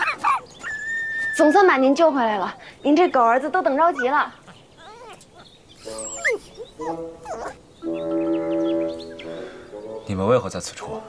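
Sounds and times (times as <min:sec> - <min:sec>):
dog whimpering: 0:00.0 - 0:01.6, 0:03.8 - 0:07.6.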